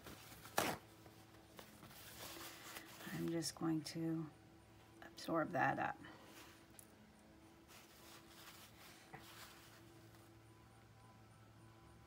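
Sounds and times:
faint room hum: 0:00.0 - 0:12.0
paper towel rustling: 0:01.5 - 0:03.3, 0:07.7 - 0:10.2.

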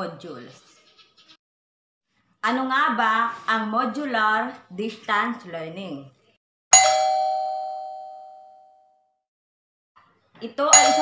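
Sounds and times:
bell chime ringing: 0:06.8 - 0:08.8, 0:10.8 - 0:11.0.

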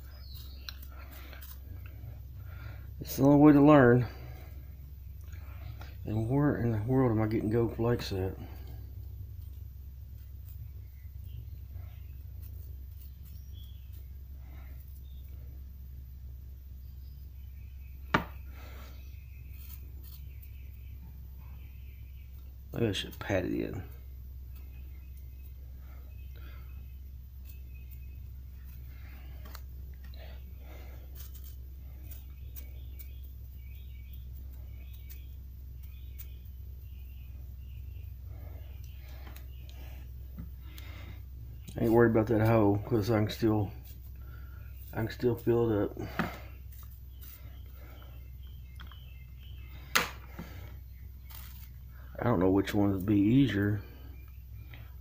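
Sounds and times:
steady low hum: 0:00.0 - 0:55.0
metal leaf rustling and crinkling: 0:30.7 - 0:33.2, 0:51.2 - 0:51.9.

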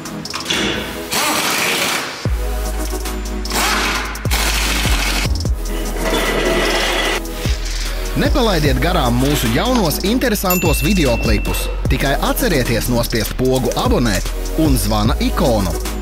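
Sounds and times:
electronic music with beat: 0:00.0 - 0:16.0
pneumatic impact wrench rattling: 0:00.3 - 0:02.3, 0:03.5 - 0:05.3.

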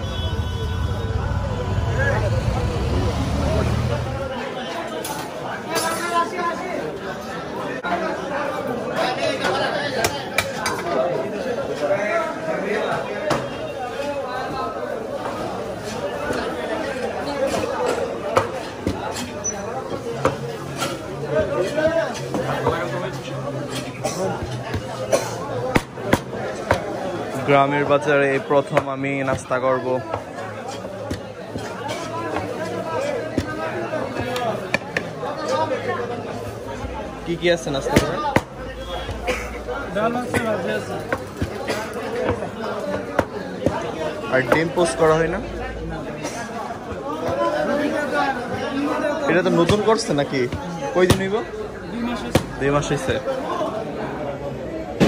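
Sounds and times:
background chatter of voices: 0:00.0 - 0:55.0
people talking: 0:00.0 - 0:55.0.

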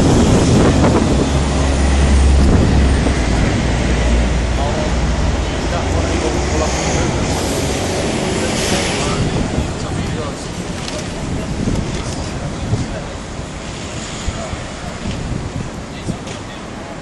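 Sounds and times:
passing traffic: 0:00.0 - 0:17.0
wind buffeting microphone: 0:00.0 - 0:17.0.

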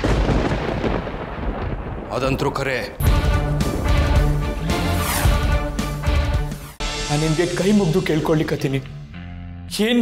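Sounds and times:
deep rumbling boom: 0:00.0 - 0:04.4.

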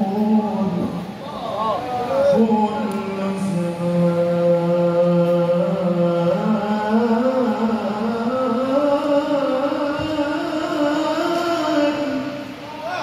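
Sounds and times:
men chanting devotional song: 0:00.0 - 0:13.0.

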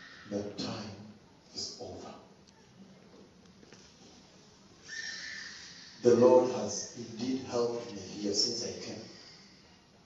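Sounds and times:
man breathing in close: 0:09.0 - 0:09.9.

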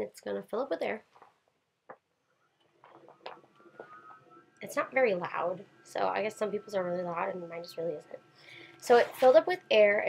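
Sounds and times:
air generator whine: 0:02.8 - 0:10.0.

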